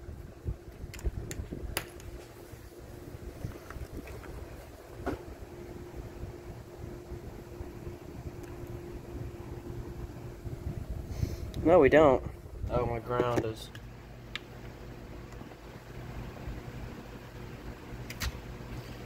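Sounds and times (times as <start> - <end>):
microphone handling rumble: 0.0 - 5.5, 8.0 - 13.6
faint steady hum: 0.0 - 19.0.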